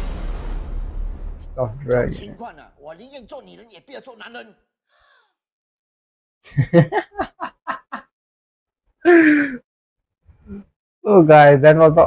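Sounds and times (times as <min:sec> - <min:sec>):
man laughing: 0:06.4 - 0:08.1, 0:09.1 - 0:09.6.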